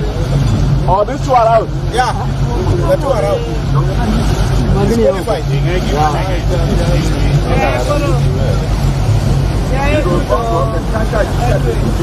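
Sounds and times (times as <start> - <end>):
motorboat engine droning: 0.0 - 12.0
voices talking: 0.0 - 12.0.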